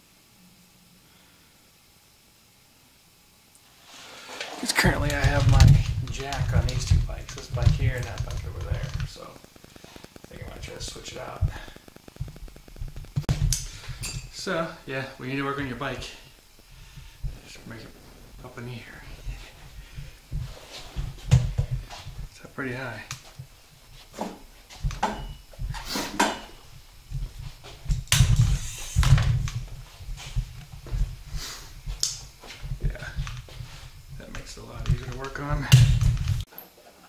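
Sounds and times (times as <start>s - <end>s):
low thumps: 4.8s - 14.4s, 15.6s - 22.4s, 23.0s - 36.5s
fast faint ticking: 4.8s - 14.5s
sharp clicks: 5.0s - 13.7s, 34.2s - 36.5s.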